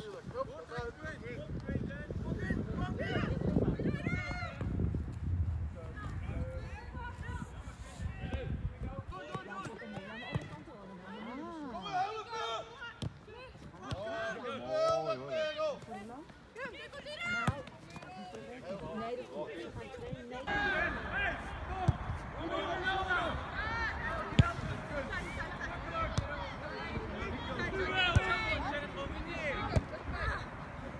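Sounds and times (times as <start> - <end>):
voices calling and shouting: 0.0 - 30.9
ball being kicked: 8.2 - 10.6, 17.2 - 18.4.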